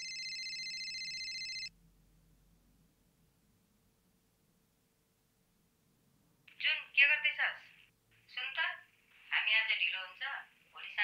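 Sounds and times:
woman speaking over telephone: 6.5 - 11.0.

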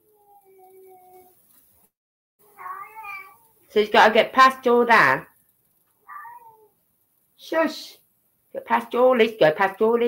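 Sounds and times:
cat meowing: 2.5 - 3.6, 6.0 - 6.8.

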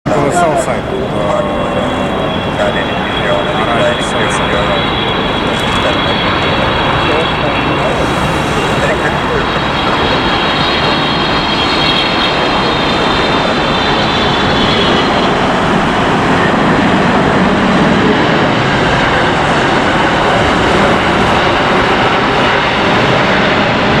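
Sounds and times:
high jet whine: 0.0 - 24.0
jet engine noise: 0.0 - 24.0.

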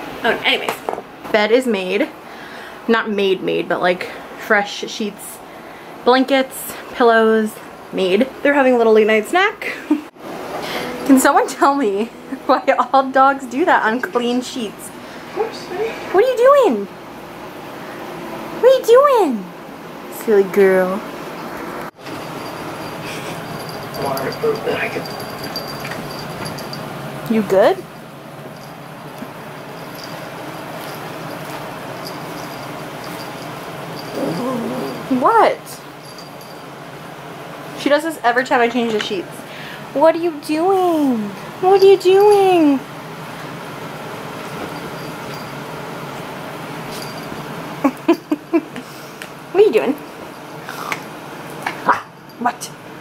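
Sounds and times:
small dog vocalizing: 34.0 - 35.2.

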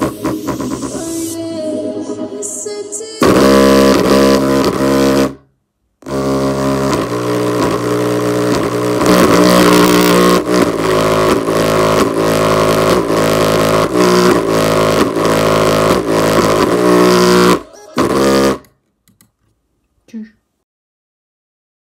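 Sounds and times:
distorted bass from loudspeaker: 0.0 - 18.7.

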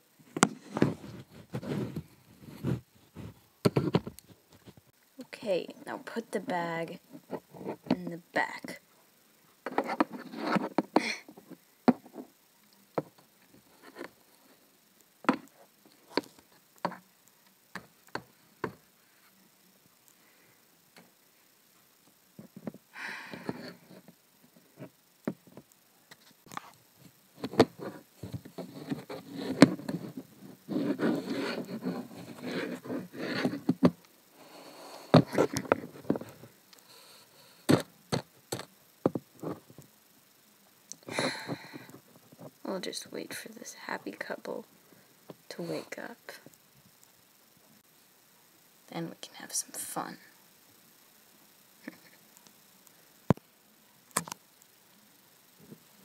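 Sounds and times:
rustling and scraping handling: 0.2 - 4.9, 7.1 - 8.1, 9.6 - 12.3, 27.4 - 36.5.

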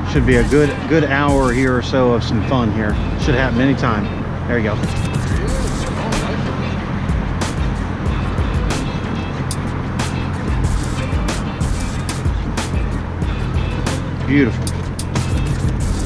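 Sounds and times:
background music: 0.0 - 16.0
low rumble of road traffic: 0.0 - 16.0.

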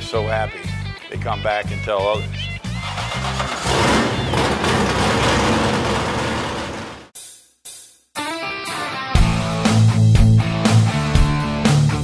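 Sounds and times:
car engine revving: 2.7 - 7.1.

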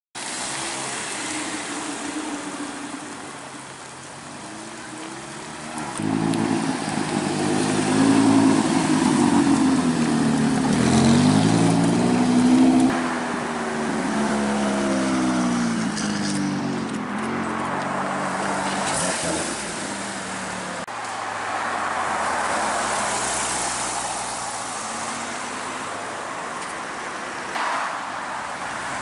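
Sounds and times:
sports car engines revving: 0.4 - 20.9.

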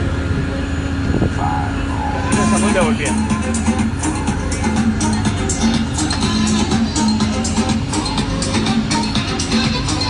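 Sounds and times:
boat engine drone: 0.0 - 10.0.

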